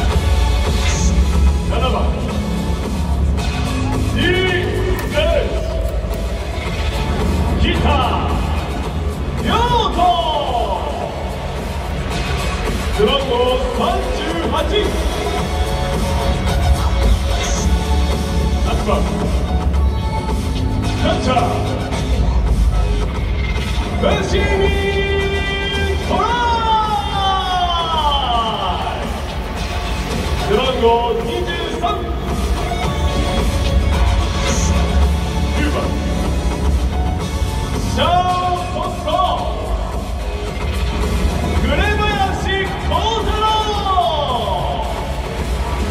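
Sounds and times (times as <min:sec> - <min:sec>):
music with heavy bass: 0:00.0 - 0:45.9
stadium announcer calling: 0:00.0 - 0:45.9
announcer calling a name: 0:03.9 - 0:05.9, 0:09.4 - 0:11.4, 0:23.9 - 0:29.4, 0:37.7 - 0:40.0, 0:41.5 - 0:45.2.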